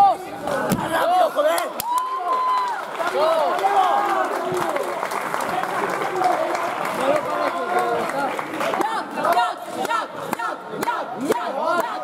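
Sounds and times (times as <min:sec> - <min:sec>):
people clapping: 0:01.4 - 0:12.0
crowd shouting: 0:05.5 - 0:12.0.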